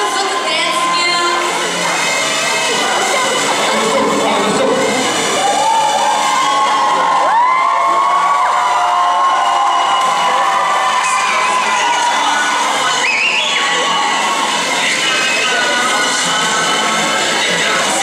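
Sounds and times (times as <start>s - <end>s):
audience cheering and screaming: 0.0s - 16.8s.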